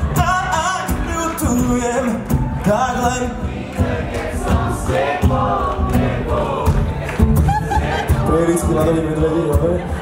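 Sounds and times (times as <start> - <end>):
audience singing along: 0.0 - 8.7
live pop band playing: 0.0 - 10.0.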